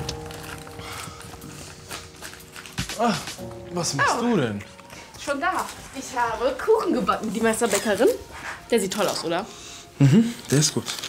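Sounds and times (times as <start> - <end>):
footsteps: 0.0 - 8.7
quiet background music: 0.0 - 11.0.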